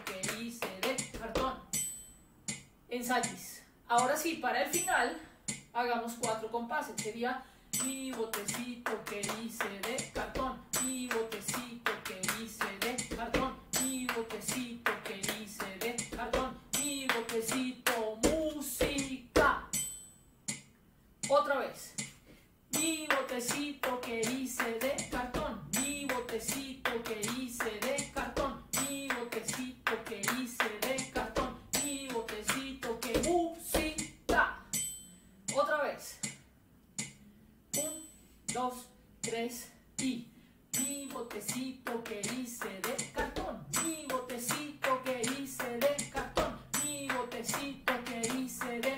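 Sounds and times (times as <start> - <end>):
hands clapping and slapping thighs: 0.0 - 1.3, 7.8 - 19.1, 23.0 - 34.1, 41.9 - 48.9
woman chanting: 0.0 - 1.7, 5.8 - 19.7, 22.8 - 34.7, 37.8 - 48.9.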